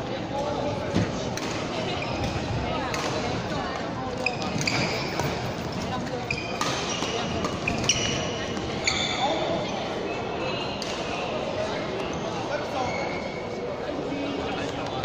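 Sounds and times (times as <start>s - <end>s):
background chatter: 0.0s - 15.0s
shoes squeaking on court floor: 1.1s - 10.8s, 11.9s - 13.6s
racket hitting shuttlecock: 6.6s - 8.2s.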